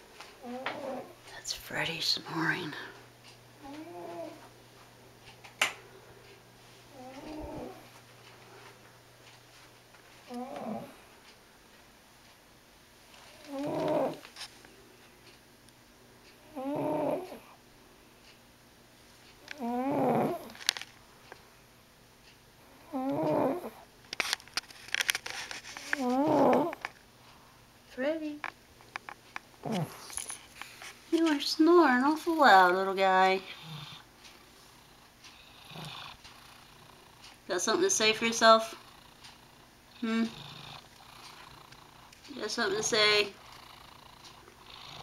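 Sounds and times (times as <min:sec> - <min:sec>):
cat snoring: 0:00.4 - 0:01.2, 0:03.6 - 0:04.4, 0:06.9 - 0:07.9, 0:10.3 - 0:11.0, 0:13.3 - 0:14.2, 0:16.5 - 0:17.6, 0:19.5 - 0:20.6, 0:22.8 - 0:23.8, 0:26.0 - 0:26.8, 0:33.4 - 0:34.0, 0:35.4 - 0:37.2, 0:38.8 - 0:42.0, 0:43.4 - 0:45.0.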